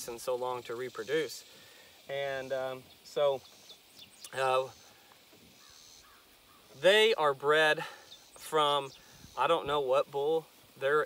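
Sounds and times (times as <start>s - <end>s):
faint bird call: 2.4s - 6.9s.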